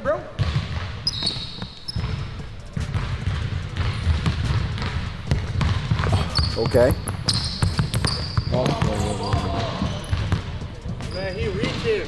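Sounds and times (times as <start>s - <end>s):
basketball bouncing on hardwood: 0.4s - 11.9s
high shoe squeaks: 0.9s - 4.8s, 5.4s - 12.0s.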